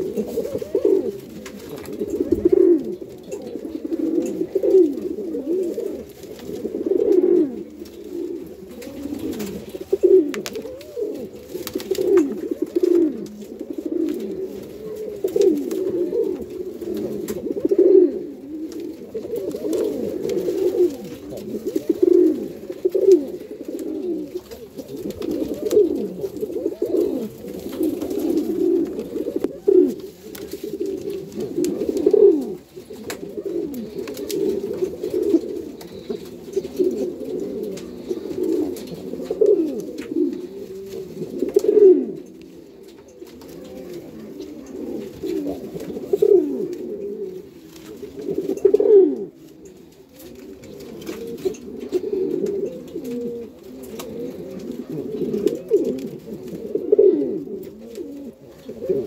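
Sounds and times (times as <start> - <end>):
pigeons cooing: 0.0 - 59.0.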